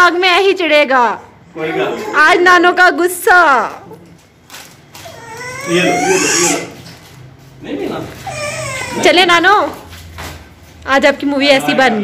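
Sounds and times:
child whining cry: 0:05.0 - 0:06.8, 0:08.2 - 0:09.4.

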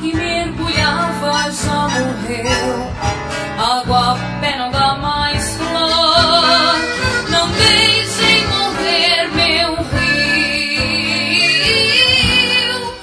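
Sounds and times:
girl singing: 0:00.0 - 0:13.0
guitar accompaniment: 0:00.0 - 0:13.0.

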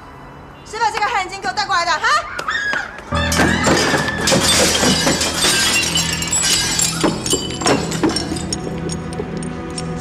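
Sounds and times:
objects crashing onto tiled floor: 0:03.2 - 0:08.8
glass shattering: 0:03.2 - 0:09.0.

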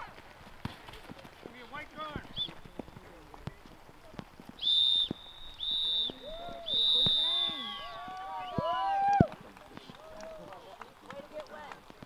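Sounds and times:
referee whistle blasts: 0:04.6 - 0:08.7.

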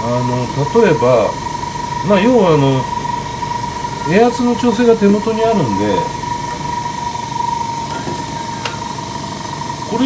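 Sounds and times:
airbrush compressor humming: 0:00.0 - 0:10.0.

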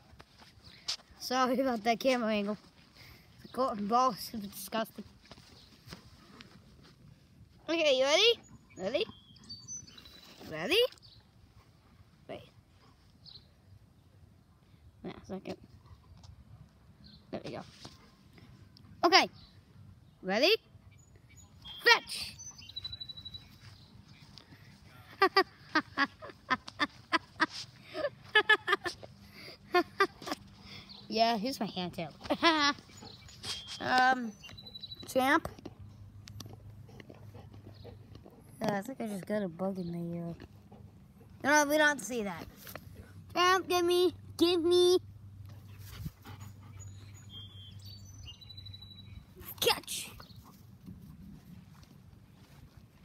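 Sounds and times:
person giggling: 0:24.9 - 0:30.4.

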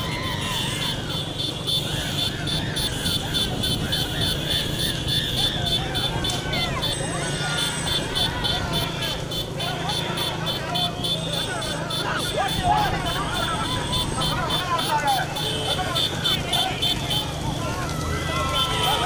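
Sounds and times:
motorcycle engines running: 0:00.0 - 0:19.0
people shouting: 0:00.0 - 0:19.0.

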